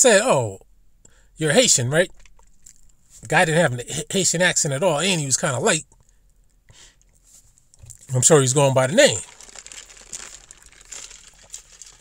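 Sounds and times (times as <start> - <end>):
man speaking: 0.0 - 0.6, 1.4 - 2.1, 3.2 - 5.8, 8.1 - 9.3
faint crinkling and rustling: 2.1 - 3.3, 5.8 - 12.0.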